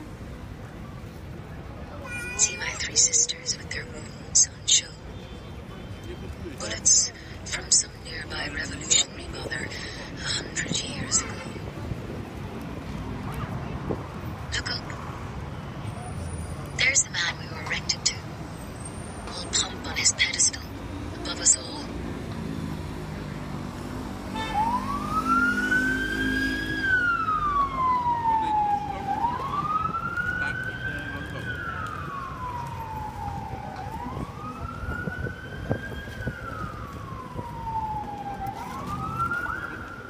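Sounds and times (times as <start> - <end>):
emergency siren wailing: 24.3 - 40.0.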